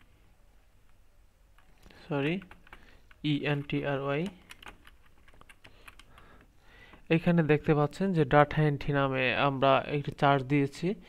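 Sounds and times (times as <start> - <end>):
typing on computer keyboard: 1.6 - 6.4.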